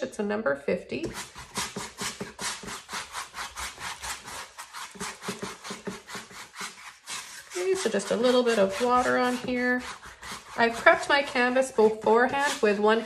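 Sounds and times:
brush scrubbing on canvas: 1.1s - 13.0s.

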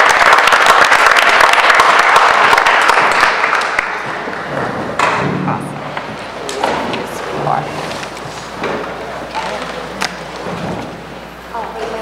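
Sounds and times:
audience room noise: 0.0s - 12.0s.

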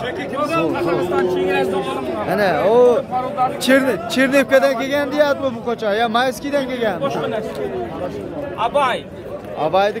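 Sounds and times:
crowd of men talking: 0.0s - 10.0s.

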